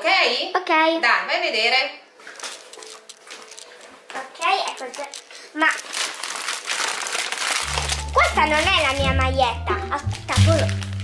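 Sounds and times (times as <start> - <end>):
paper bag crinkling: 2.2 - 9.4, 10.0 - 11.0.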